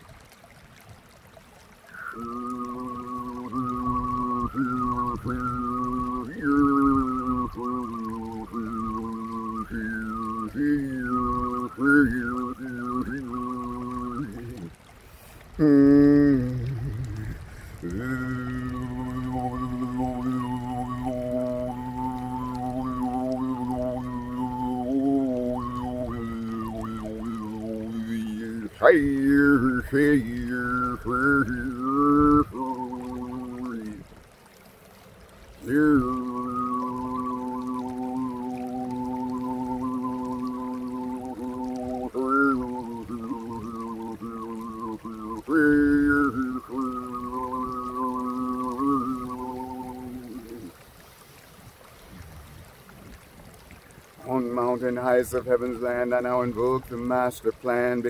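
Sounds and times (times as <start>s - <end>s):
man overtone singing: 1.9s - 14.8s, 15.6s - 34.0s, 35.6s - 50.8s, 54.2s - 58.0s.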